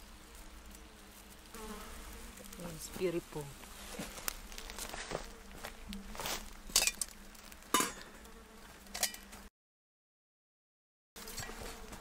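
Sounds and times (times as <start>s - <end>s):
fly buzzing: 0.0s - 9.5s, 11.2s - 12.0s
footsteps crunching on dry leaves: 2.6s - 6.8s.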